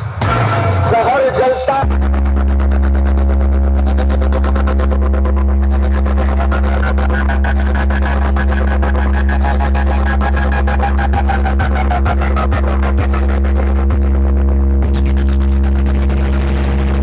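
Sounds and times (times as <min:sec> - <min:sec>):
pulsing deep bass drone: 0:00.0 - 0:17.0.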